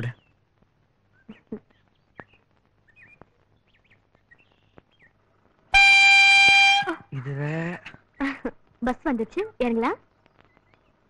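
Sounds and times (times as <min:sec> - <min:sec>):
faint bird chirps: 0:00.0 - 0:05.4, 0:09.6 - 0:11.0
vehicle horn blast: 0:05.7 - 0:07.0.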